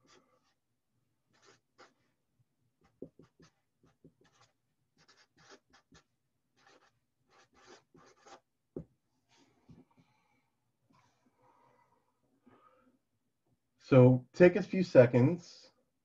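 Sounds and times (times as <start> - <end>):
marker writing on paper: 0.0 - 0.6, 1.3 - 2.1, 2.8 - 8.9.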